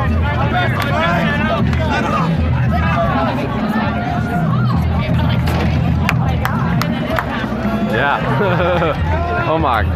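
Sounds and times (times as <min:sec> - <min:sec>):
background music: 0:00.0 - 0:09.9
crowd talking and calling out: 0:00.0 - 0:09.9.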